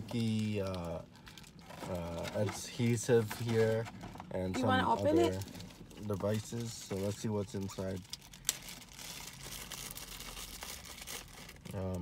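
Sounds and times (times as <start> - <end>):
packaging rustling and crinkling: 0.0 - 12.0.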